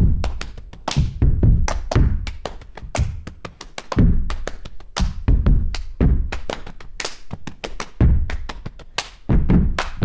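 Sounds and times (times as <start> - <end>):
rhythmic hand claps and slaps: 0.0 - 10.0.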